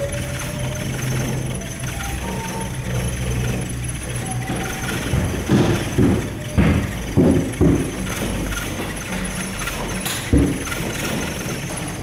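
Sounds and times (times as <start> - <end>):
gondola cabin and cable rumbling: 0.0 - 12.0.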